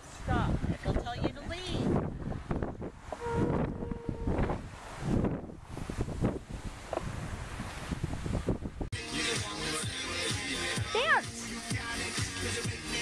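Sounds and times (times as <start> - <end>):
wind buffeting microphone: 0.0 - 8.9.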